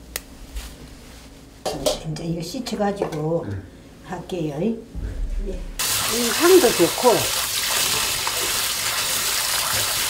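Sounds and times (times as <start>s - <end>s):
water splashing as hands rinse: 5.8s - 10.0s.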